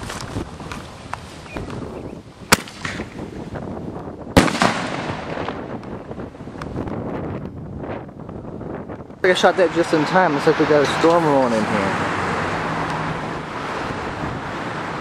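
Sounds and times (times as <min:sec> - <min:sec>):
firework launch crack: 0:02.5 - 0:03.2, 0:04.4 - 0:06.7
firework bang with echo: 0:04.4 - 0:05.7.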